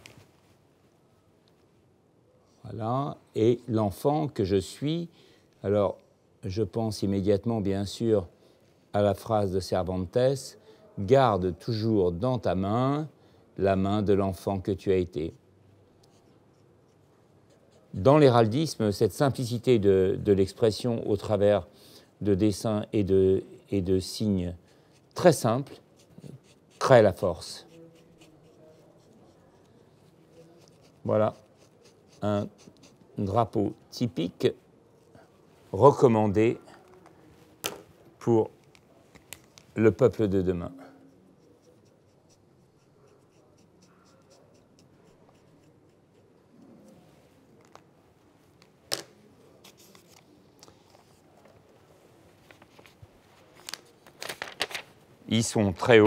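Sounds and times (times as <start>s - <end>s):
marker scratching on paper: 24.9s - 33.4s, 41.1s - 46.8s.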